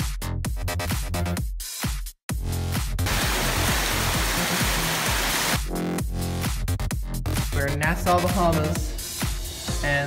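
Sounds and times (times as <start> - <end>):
electronic dance music: 3.0 - 6.0
fountain water splashing: 3.1 - 5.6.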